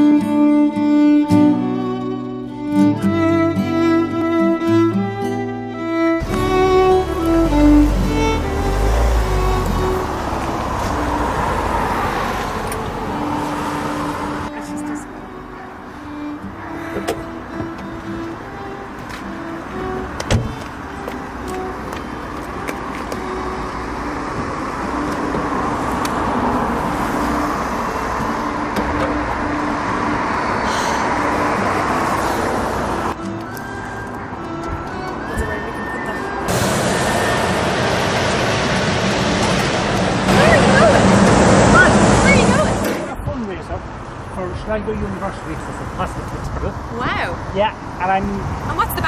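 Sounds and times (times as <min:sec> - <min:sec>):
background music with held notes: 0:00.0 - 0:10.9, 0:14.4 - 0:25.6, 0:33.2 - 0:36.5
car noise: 0:00.0 - 0:49.0.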